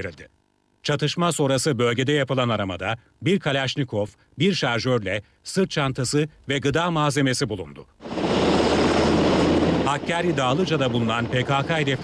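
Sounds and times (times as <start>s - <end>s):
helicopter rotor chopping: 8.0s - 12.0s.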